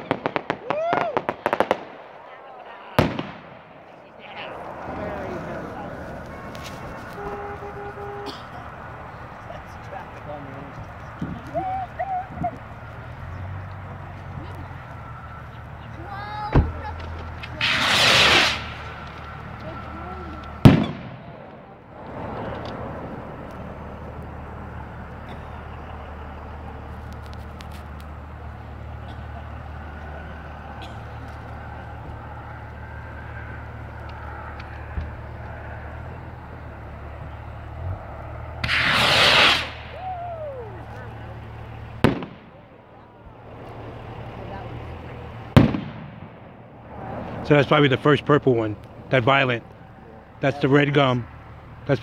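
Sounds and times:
firework bang: 0.0 - 2.1, 3.0 - 3.8, 17.4 - 19.5, 20.6 - 22.5, 38.6 - 40.2, 42.0 - 42.7, 45.5 - 47.1
rocket launch whoosh: 17.5 - 19.2, 20.6 - 22.2, 38.6 - 40.2.

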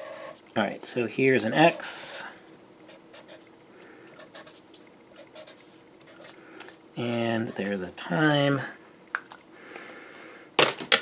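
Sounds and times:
marker scratching on paper: 2.9 - 3.5, 4.2 - 6.4.

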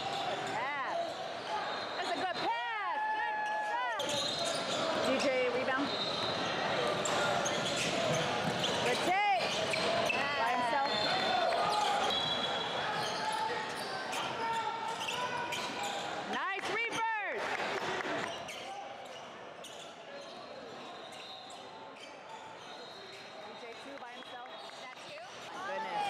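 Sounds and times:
voices in a hall: 0.0 - 26.0
sneakers squeaking: 4.0 - 16.3, 18.2 - 26.0.

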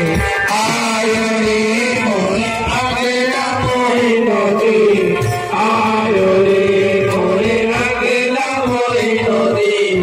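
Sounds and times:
men chanting a devotional song: 0.0 - 10.0
music: 0.0 - 10.0.

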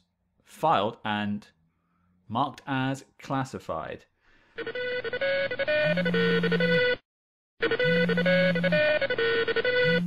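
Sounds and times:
phone ringtone melody: 4.6 - 7.0, 7.6 - 10.0.

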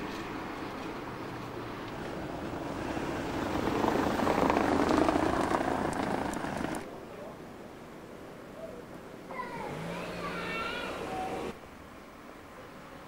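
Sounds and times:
passing vehicle engine: 0.0 - 6.9, 9.4 - 11.6.

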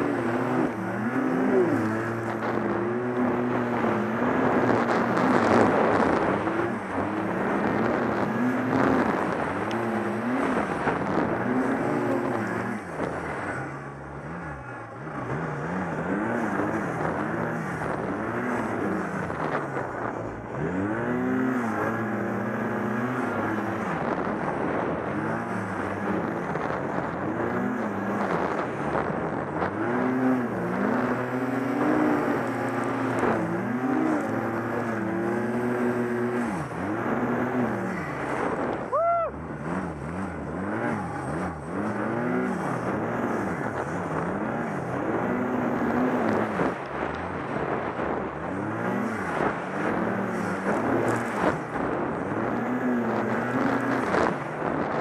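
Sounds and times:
snowmobile engine revving: 0.0 - 55.0.

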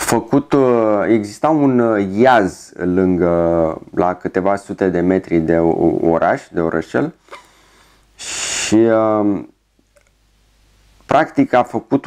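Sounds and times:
person speaking: 0.0 - 7.5, 8.2 - 10.1, 11.1 - 12.0.

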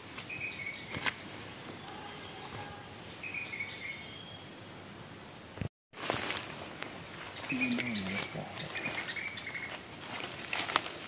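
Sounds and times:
undergrowth crackling and rustling: 5.9 - 11.0.

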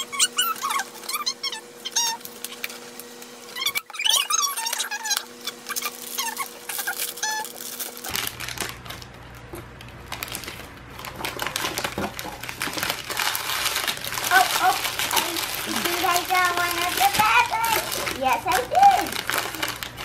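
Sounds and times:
plastic packaging crinkling: 0.2 - 20.0.

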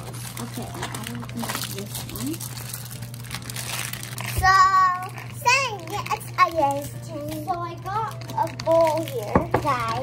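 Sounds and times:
plastic packet crinkling: 0.0 - 10.0.

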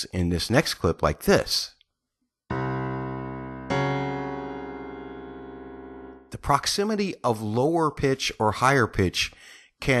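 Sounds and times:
low dissonant keyboard chord: 2.5 - 6.3.

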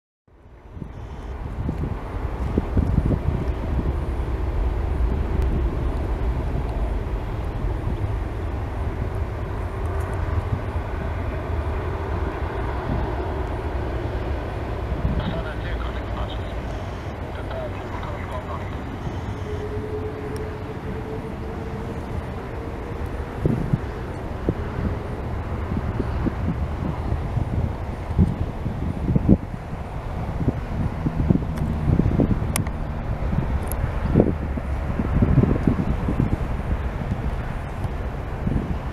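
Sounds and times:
jet engines rumbling: 0.3 - 38.9
wind on microphone: 0.6 - 38.9
engine whine rising in pitch: 0.9 - 27.3.

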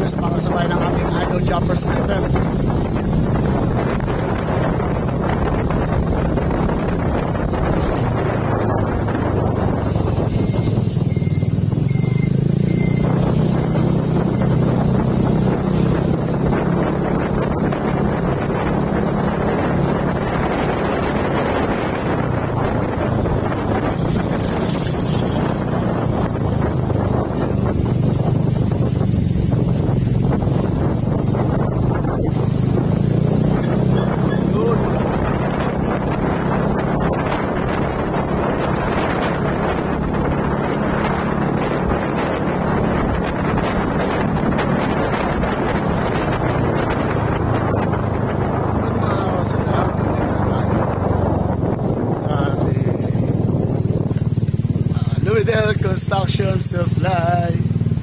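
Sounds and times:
motorcycle engine running: 0.0 - 58.0
wind noise on microphone: 0.0 - 58.0.

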